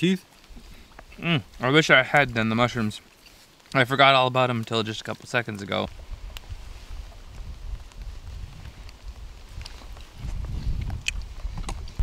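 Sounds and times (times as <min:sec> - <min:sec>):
low rumble on microphone: 0:05.9 - 0:12.0.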